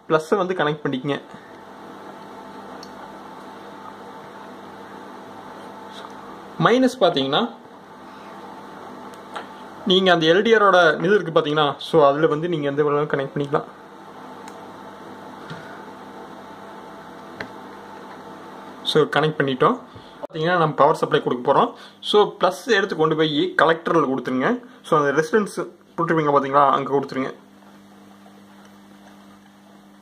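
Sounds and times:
low background hum: 0:00.0 - 0:30.0.

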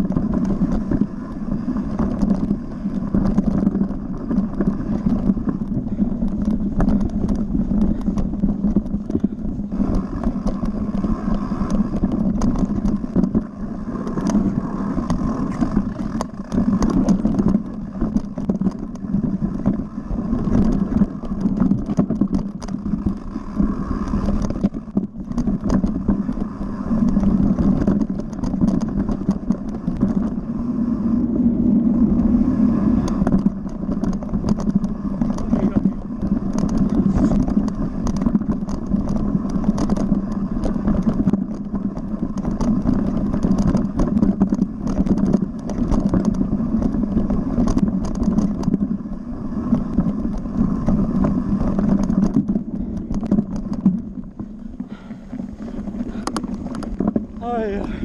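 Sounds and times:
bike rattling clicks and knocks: 0:00.0 - 0:58.0
bike tyre rumble: 0:00.0 - 0:58.0.

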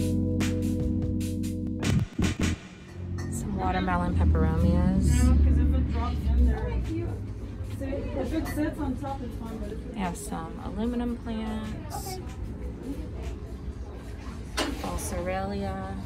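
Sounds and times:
low rumble: 0:01.8 - 0:07.6
indistinct voices: 0:03.2 - 0:16.0.

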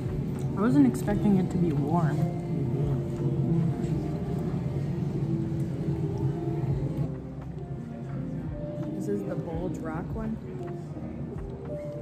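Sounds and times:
faint blurred voices: 0:00.0 - 0:12.0
low rumble of restaurant: 0:00.0 - 0:12.0.

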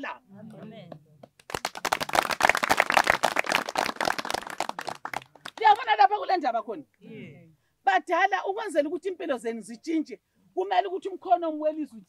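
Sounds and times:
group of people clapping: 0:00.4 - 0:06.0.

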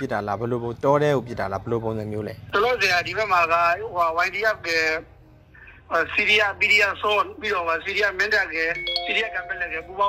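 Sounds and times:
man narrating: 0:05.9 - 0:10.0.

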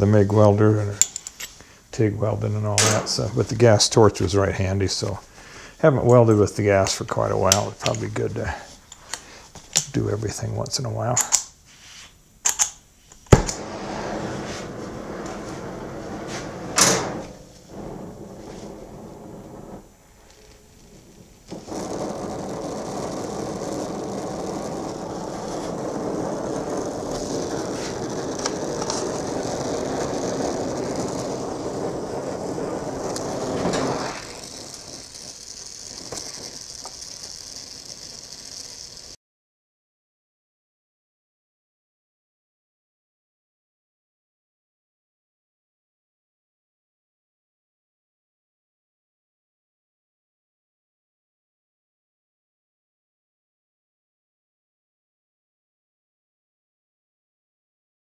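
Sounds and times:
welding torch flame hissing: 0:00.0 - 0:39.2
sharp clicks: 0:12.4 - 0:13.6
loud pop of torch lighting: 0:12.4 - 0:13.8, 0:33.0 - 0:37.3.

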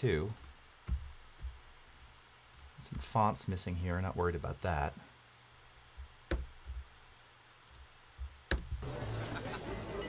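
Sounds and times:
computer mouse clicks: 0:02.5 - 0:02.7, 0:06.3 - 0:06.8, 0:07.6 - 0:08.8.

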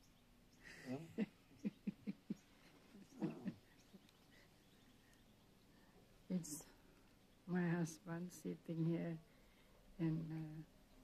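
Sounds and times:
man's quiet voice: 0:00.8 - 0:01.2, 0:03.1 - 0:03.6.

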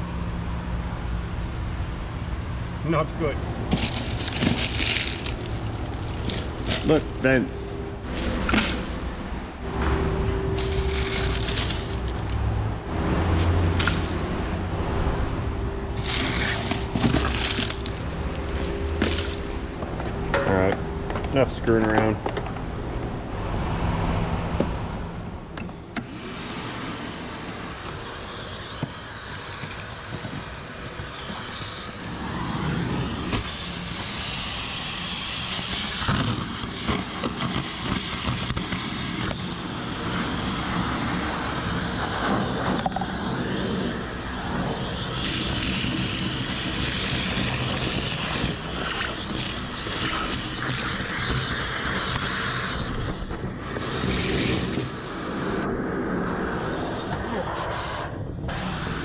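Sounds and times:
leaves crackling into hose: 0:03.7 - 0:09.1, 0:10.5 - 0:12.5, 0:13.3 - 0:14.3, 0:16.0 - 0:19.7, 0:43.4 - 0:53.2.

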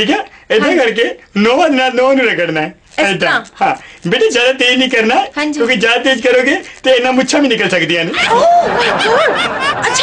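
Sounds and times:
person laughing: 0:08.1 - 0:10.0.

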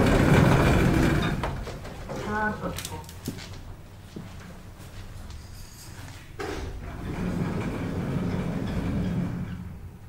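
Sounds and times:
elevator doors sliding shut: 0:00.0 - 0:01.7, 0:06.4 - 0:10.0
door panels rumbling along tracks: 0:00.0 - 0:02.2, 0:06.4 - 0:10.0.

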